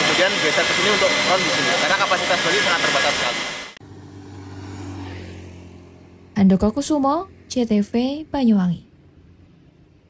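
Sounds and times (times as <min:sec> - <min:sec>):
vehicle engine hum: 0:00.0 - 0:10.0
traffic noise: 0:03.7 - 0:10.0.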